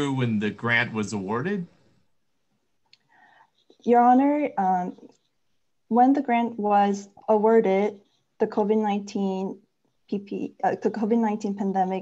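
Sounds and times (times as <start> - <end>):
person speaking: 0.0 - 1.8.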